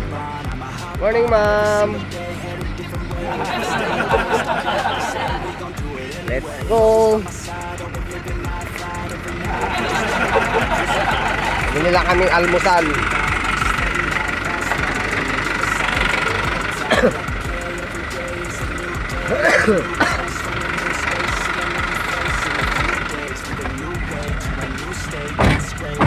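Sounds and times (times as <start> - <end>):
vehicle engine idling: 0.0 - 26.0
voices: 0.0 - 26.0.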